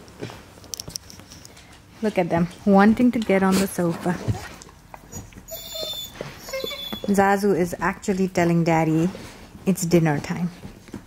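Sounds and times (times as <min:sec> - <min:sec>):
dog whining: 0:04.3 - 0:07.2.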